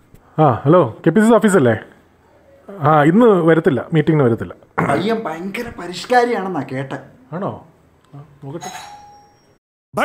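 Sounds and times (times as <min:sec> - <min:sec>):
electronic bell-like chime: 0:08.6 - 0:09.6.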